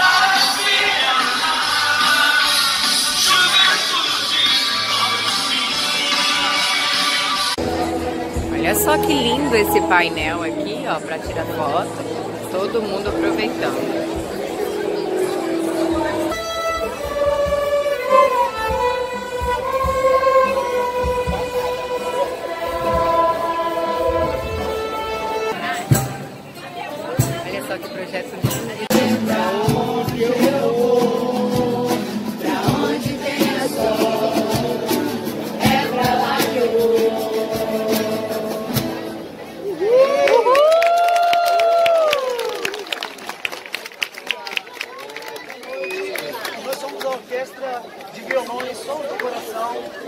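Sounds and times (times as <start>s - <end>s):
acoustic guitars strumming: 4.8s - 16.5s, 20.9s - 39.5s
violin ensemble playing slow melody: 8.5s - 11.9s, 15.0s - 25.8s
crowd whooping and cheering: 39.6s - 43.1s.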